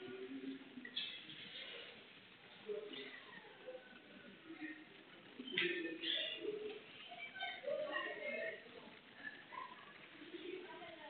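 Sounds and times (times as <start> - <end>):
voices in background: 0.0 - 11.0.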